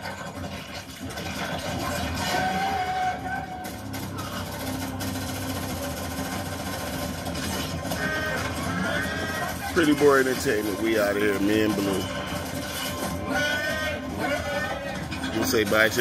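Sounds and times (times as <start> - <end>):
action film music: 0.0 - 16.0.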